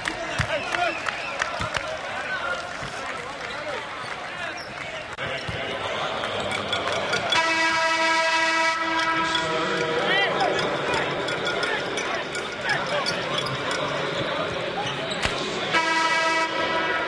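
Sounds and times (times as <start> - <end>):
crowd murmur: 0.0 - 17.0
arena horn blast: 7.3 - 10.1, 15.7 - 17.0.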